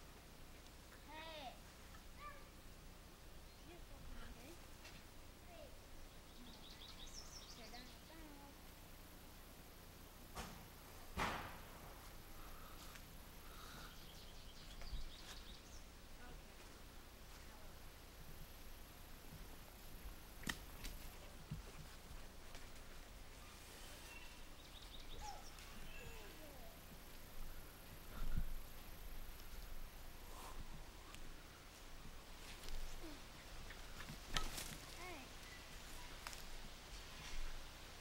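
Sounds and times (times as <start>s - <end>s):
sharp knock: 11.2s - 11.7s.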